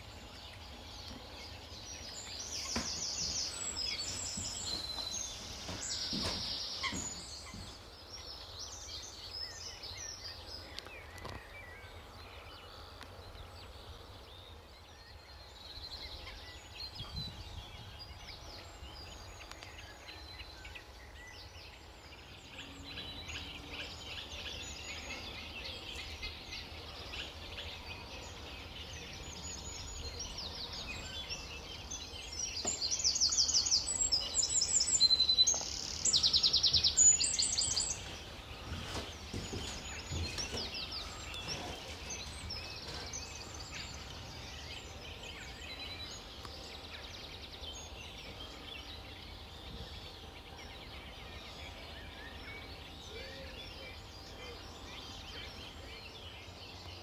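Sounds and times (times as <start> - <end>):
birds chattering: 0.0 - 57.0.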